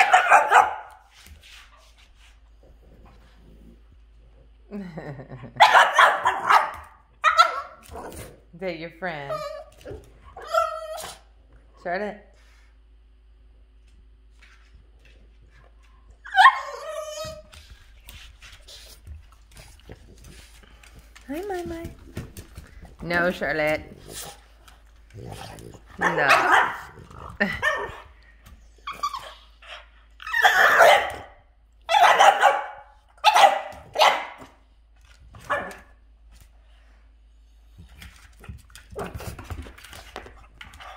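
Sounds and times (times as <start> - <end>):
dog barking in play: 0.0 - 1.0, 5.6 - 8.3, 26.0 - 28.0, 30.3 - 34.6, 35.4 - 36.0
puppy yowling: 10.4 - 11.2, 16.2 - 17.5, 30.2 - 31.2.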